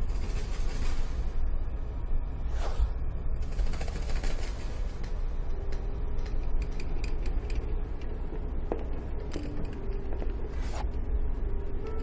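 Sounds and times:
steady low rumble: 0:00.0 - 0:12.0
pages flapping flutter: 0:03.4 - 0:05.2.

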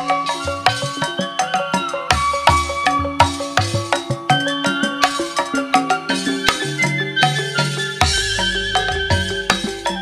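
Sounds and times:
gamelan ensemble playing: 0:00.0 - 0:10.0
wavering high melody: 0:00.0 - 0:10.0.

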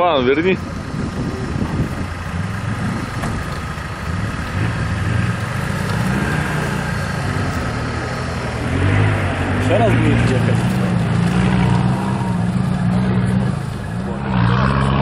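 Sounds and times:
quad bike engine running: 0:00.0 - 0:15.0.

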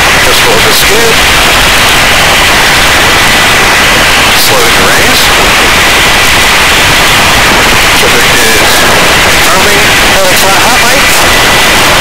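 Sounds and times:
helicopter hovering: 0:00.0 - 0:12.0.

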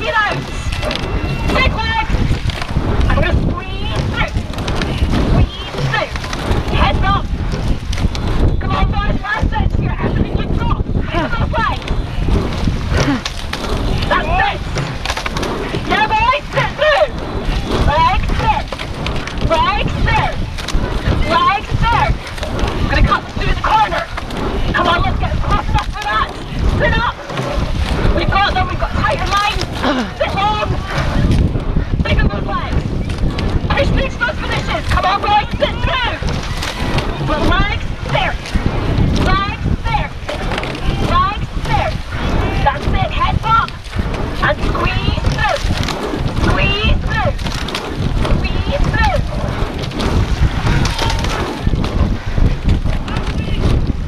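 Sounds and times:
rowing boat water wash: 0:00.0 - 0:54.0
wind buffeting microphone: 0:00.0 - 0:54.0
people shouting: 0:12.9 - 0:51.9.

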